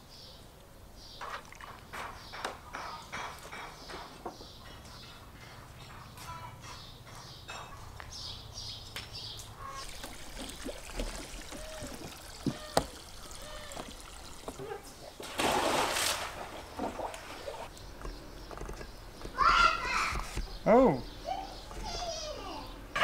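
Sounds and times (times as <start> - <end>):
water trickling and splashing: 1.2 - 2.2, 9.4 - 17.8.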